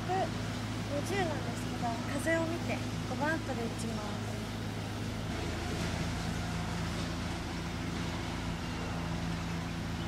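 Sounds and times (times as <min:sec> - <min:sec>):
distant engine hum: 0:00.0 - 0:10.0.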